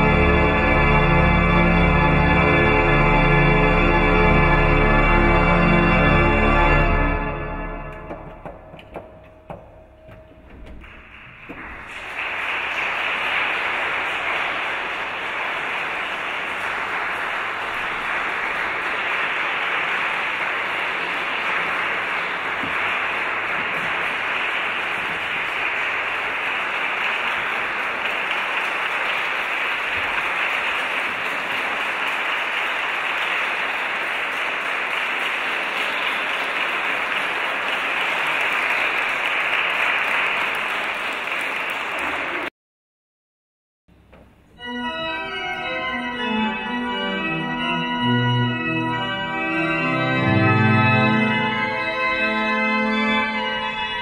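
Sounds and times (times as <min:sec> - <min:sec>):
audience applauding: 0:07.7 - 0:42.5.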